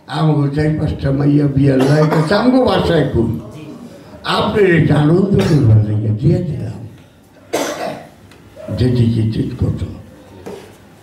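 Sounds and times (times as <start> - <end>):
man coughing: 1.7 - 2.5, 5.3 - 5.8, 7.5 - 8.2.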